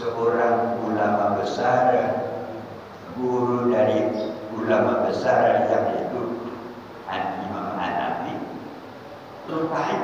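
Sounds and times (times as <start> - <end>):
man speaking through loudspeaker: 0.0 - 8.8, 9.4 - 10.0.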